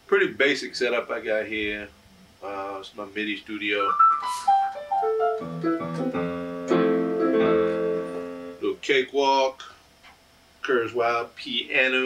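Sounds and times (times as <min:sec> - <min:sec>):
digital piano playing: 0:03.8 - 0:08.6.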